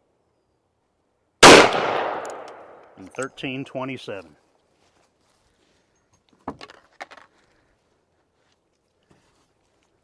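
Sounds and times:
metallic clicks and clinks: 2.2 - 3.5.

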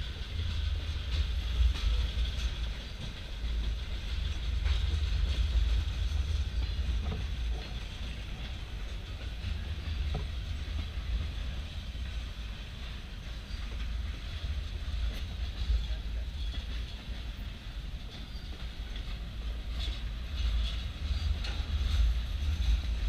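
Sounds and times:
train wheels rumbling on rail: 0.0 - 23.0.

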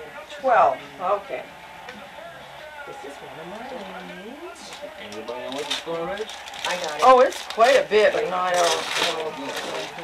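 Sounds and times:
gift wrapping rustling and clicking: 3.5 - 10.0.

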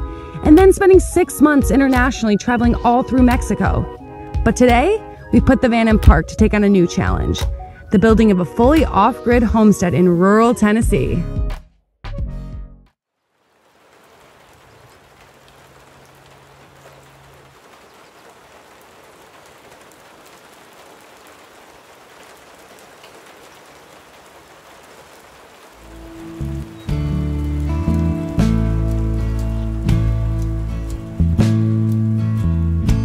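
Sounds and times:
rain falling: 0.0 - 9.8, 13.1 - 33.0
guitar music: 25.8 - 33.0.

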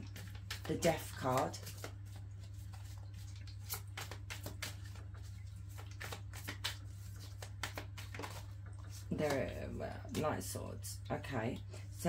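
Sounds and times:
cards being shuffled: 0.0 - 10.2.

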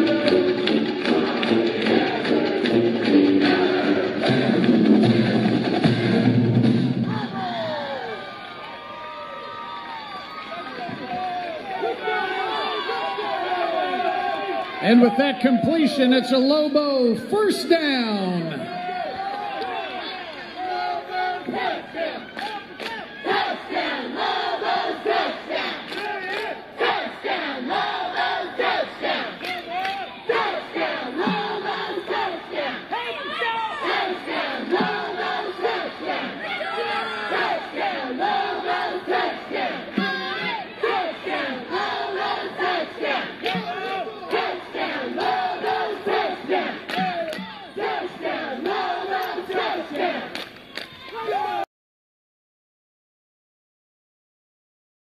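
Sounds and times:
cheerleaders shouting in unison: 18.4 - 51.6.

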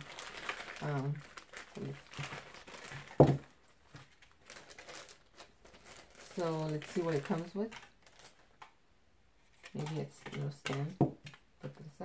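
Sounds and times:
person speaking: 0.0 - 3.4, 6.2 - 8.0, 9.5 - 12.0
plastic bag crinkling and tearing: 0.0 - 8.6.

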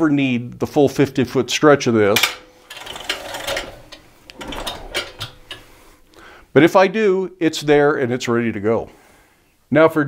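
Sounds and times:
hose reel ratcheting: 2.6 - 6.2.

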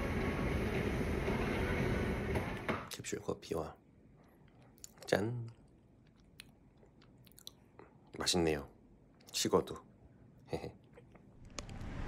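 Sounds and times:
faint chewing: 4.2 - 8.2, 10.6 - 11.4
mouth and teeth clicks: 6.0 - 7.7.

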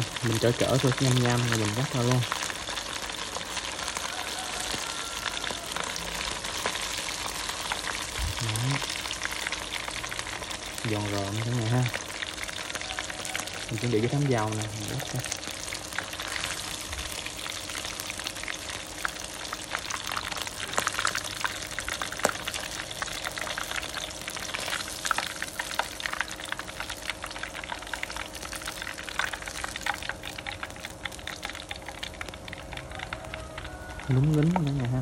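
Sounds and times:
food deep-frying in hot oil: 0.0 - 35.0.

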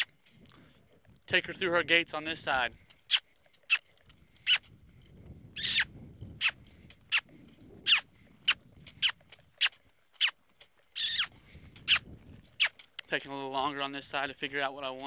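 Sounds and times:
person making kissing sounds: 11.0 - 12.9.

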